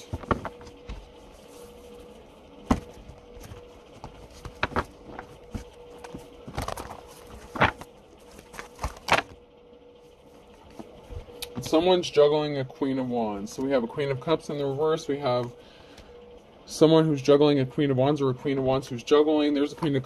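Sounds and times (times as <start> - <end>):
cards tapping and clicking: 0.0 - 1.0, 2.7 - 9.3
faint steady hum: 0.0 - 20.0.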